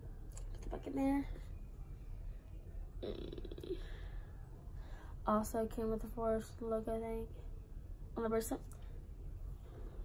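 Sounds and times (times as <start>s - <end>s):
person making croaky throat sound: 3.0s - 3.8s.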